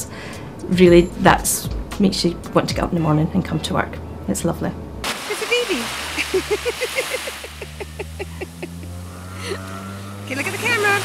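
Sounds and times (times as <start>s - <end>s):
small child giggling: 6.2s - 8.9s.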